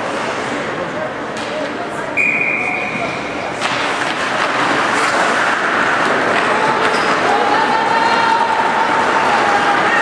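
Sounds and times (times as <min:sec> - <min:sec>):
spectators' voices: 0:00.0 - 0:10.0
high whistle: 0:02.2 - 0:03.0
hockey stick cracking on puck: 0:03.6 - 0:07.2.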